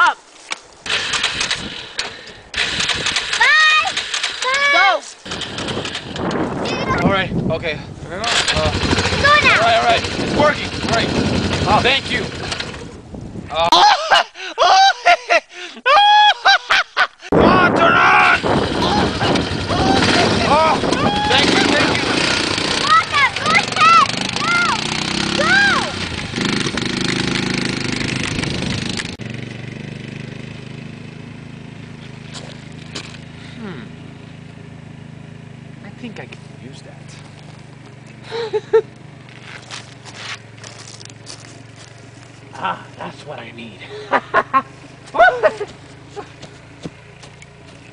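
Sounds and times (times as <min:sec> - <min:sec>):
atv engine running loudly: 0:00.9 - 0:13.2, 0:18.0 - 0:47.9
voices: 0:03.3 - 0:06.0, 0:06.6 - 0:12.7, 0:17.4 - 0:26.2, 0:42.4 - 0:44.4
shrill laughter: 0:13.6 - 0:22.2, 0:43.9 - 0:46.4
rustling scrapes on dry grass: 0:39.2 - 0:43.3.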